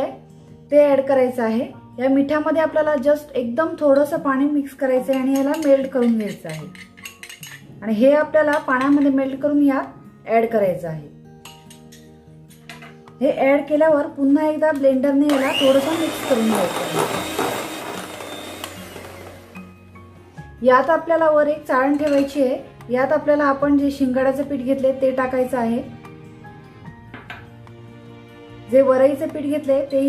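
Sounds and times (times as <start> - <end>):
soft background music: 0.0 - 30.0
spoon clinking against glass bowl: 5.1 - 7.6
electric hand mixer whirring: 15.3 - 19.8.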